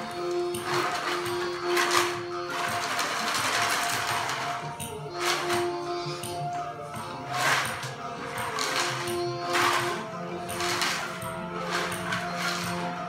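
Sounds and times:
wooden percussion strikes: 0:00.0 - 0:13.0.

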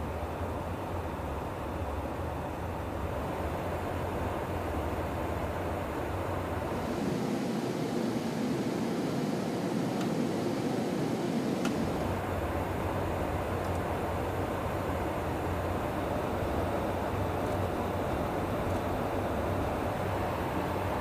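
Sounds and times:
jet aircraft engines and airflow: 0:00.0 - 0:21.0.

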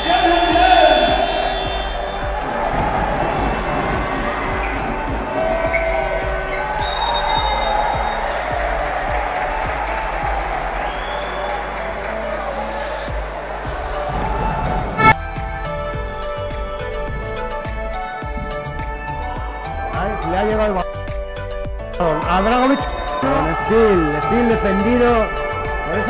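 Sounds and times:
arena crowd noise: 0:00.0 - 0:15.2
music with steady beat: 0:00.0 - 0:26.0.

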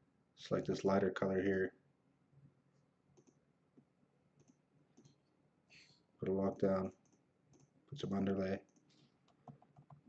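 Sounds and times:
computer mouse clicks: 0:03.2 - 0:03.4, 0:04.4 - 0:05.2, 0:06.9 - 0:07.8, 0:08.6 - 0:10.0.

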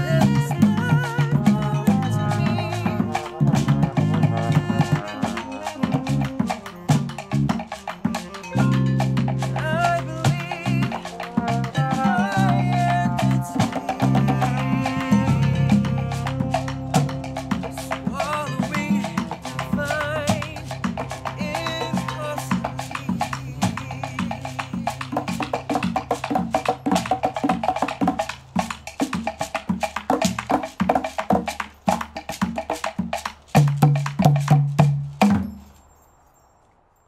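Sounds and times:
rapid clicking percussion pattern: 0:00.0 - 0:35.6
latin percussion ensemble: 0:00.0 - 0:36.0.

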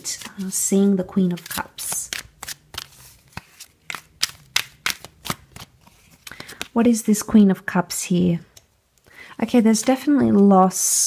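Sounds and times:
cards being shuffled: 0:00.0 - 0:06.8.

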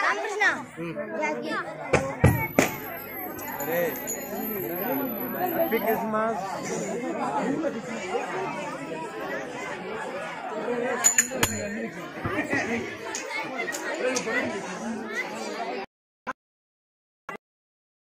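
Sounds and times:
crowd chattering: 0:00.0 - 0:15.9.

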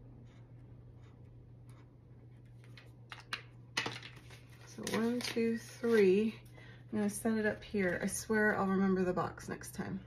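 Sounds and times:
low steady hum: 0:00.0 - 0:10.0.

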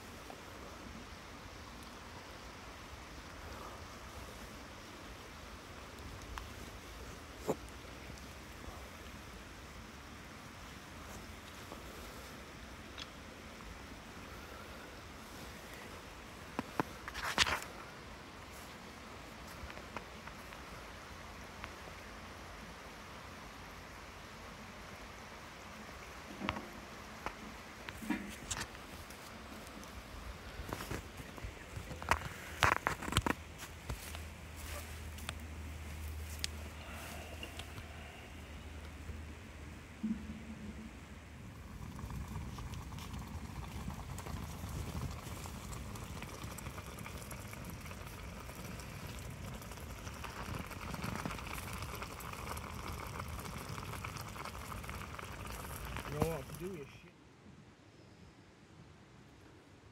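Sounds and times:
fire hissing: 0:00.0 - 0:21.0, 0:23.4 - 0:39.4, 0:41.3 - 0:56.9
wood fire crackling: 0:00.0 - 0:22.1, 0:25.7 - 0:39.8, 0:41.3 - 0:57.0.

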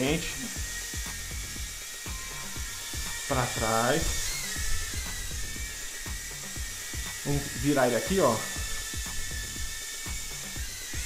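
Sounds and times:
background music: 0:00.0 - 0:11.0
quadcopter motors whining: 0:00.0 - 0:11.0.

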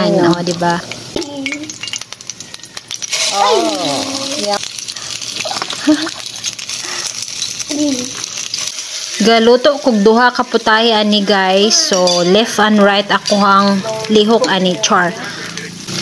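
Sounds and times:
meat sizzling in hot oil: 0:00.0 - 0:16.0.

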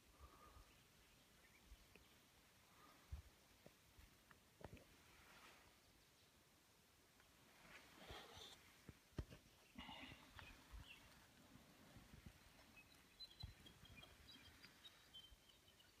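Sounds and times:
small birds chirping: 0:00.0 - 0:03.8, 0:05.7 - 0:16.0.

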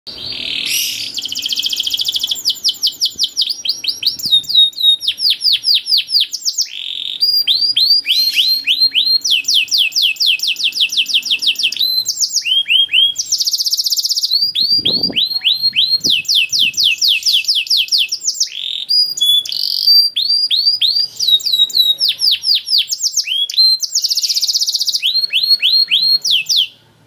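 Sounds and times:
canary singing trills: 0:00.1 - 0:26.8.

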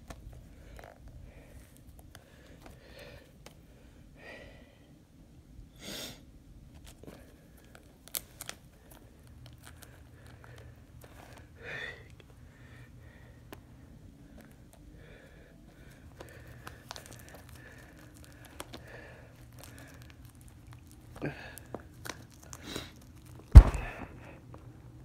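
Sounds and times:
plastic wrap crinkling: 0:07.6 - 0:10.5, 0:16.1 - 0:24.2.

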